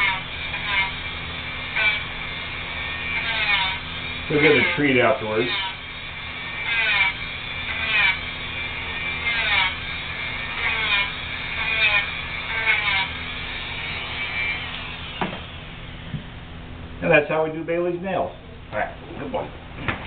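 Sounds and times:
rotary tool grinding nails: 0.0s - 15.8s.

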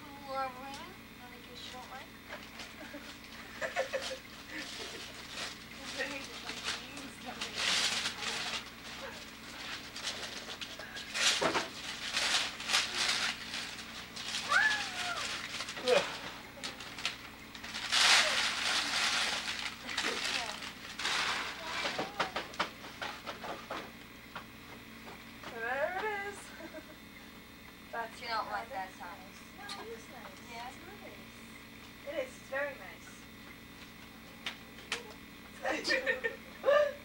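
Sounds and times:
wrapping paper rustling and tearing: 3.8s - 22.6s.

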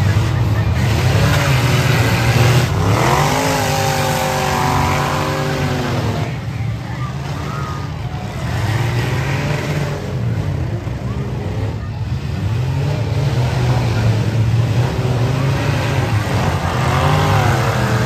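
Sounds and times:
car engines revving: 0.0s - 18.0s
deep engine rumble: 0.0s - 18.0s.

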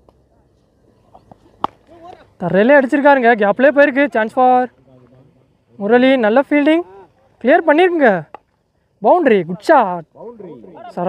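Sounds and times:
faint outdoor background: 0.0s - 11.0s
cricket bat striking ball: 1.1s - 2.3s.

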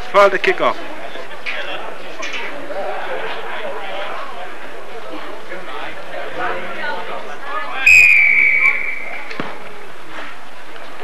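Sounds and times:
crowd chatter: 0.0s - 11.0s
referee's whistle blast: 7.9s - 9.3s.

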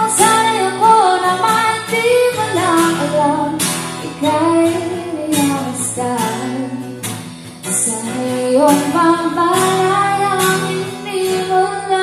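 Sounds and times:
acoustic guitar strumming: 0.0s - 12.0s
woman singing slow song: 0.0s - 12.0s.

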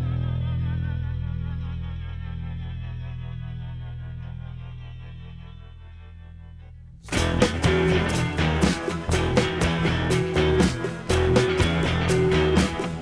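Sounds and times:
sustained rock guitar chord: 7.1s - 13.0s.

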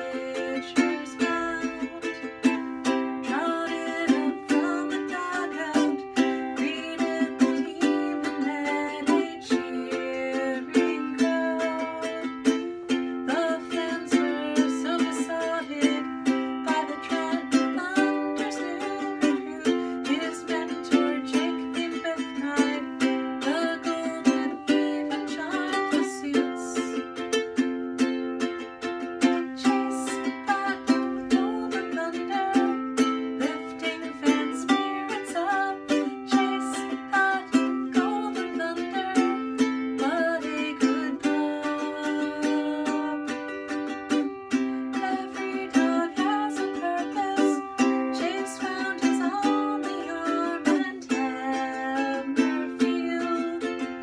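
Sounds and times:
woman singing: 0.0s - 27.4s, 28.4s - 54.0s
ukulele strummed in chords: 0.0s - 54.0s.

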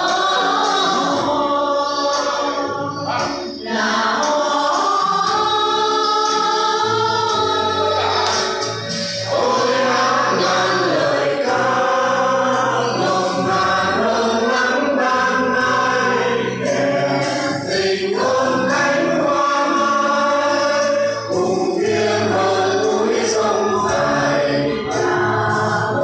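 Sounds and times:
mixed choir singing: 0.0s - 26.0s.

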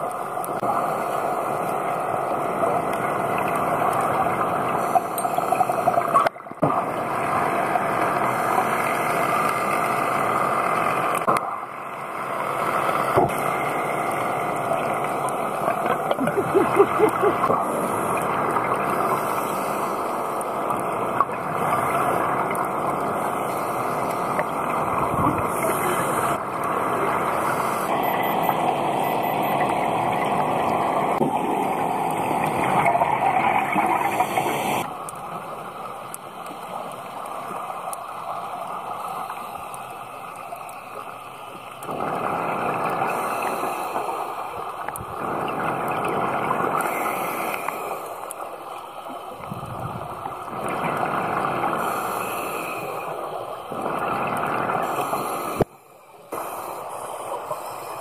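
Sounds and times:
exhaled bubbles underwater: 13.2s - 37.9s, 40.0s - 55.7s
scuba regulator breathing: 19.0s - 20.4s, 25.4s - 26.4s, 43.0s - 44.8s, 46.8s - 49.4s, 51.7s - 54.0s, 54.7s - 58.0s.

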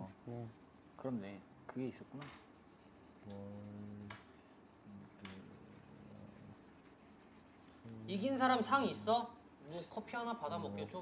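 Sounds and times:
pens scratching on paper: 0.0s - 11.0s.

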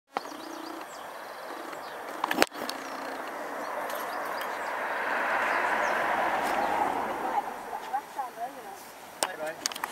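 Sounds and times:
faint bird chirps: 0.1s - 4.8s
vehicle passing by: 1.1s - 8.7s.

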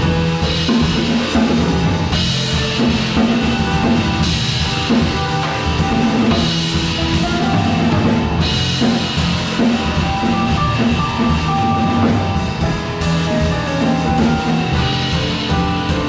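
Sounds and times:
drum kit with cymbals: 0.0s - 16.0s.

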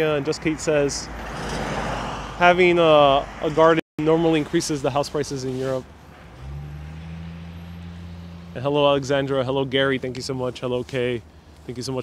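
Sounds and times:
faint street noise: 0.0s - 12.0s
vehicle engine humming: 0.4s - 12.0s.

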